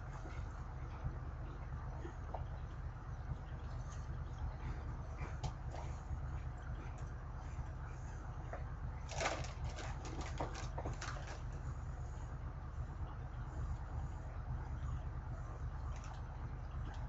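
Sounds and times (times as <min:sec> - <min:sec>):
steady low hum: 0:00.0 - 0:17.0
foil snack bag crinkling: 0:09.1 - 0:11.4.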